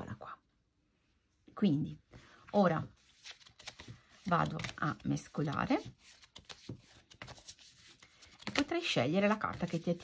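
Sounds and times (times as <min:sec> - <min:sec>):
cards being shuffled: 0:02.8 - 0:10.0.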